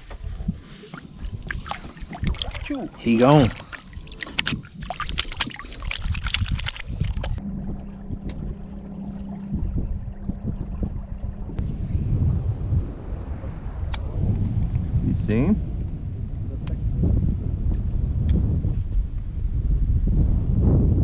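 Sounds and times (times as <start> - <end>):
wind on microphone: 0.0 - 21.0
water splashing and dripping: 0.2 - 11.6
steady low hum: 7.0 - 21.0.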